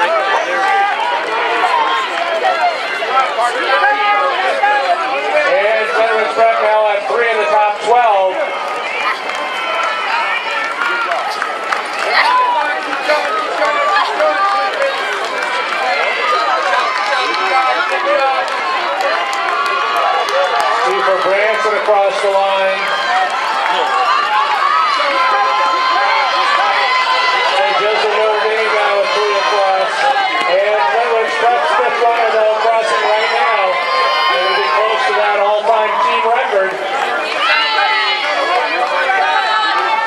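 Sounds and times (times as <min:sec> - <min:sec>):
crowd shouting: 0:00.0 - 0:40.0.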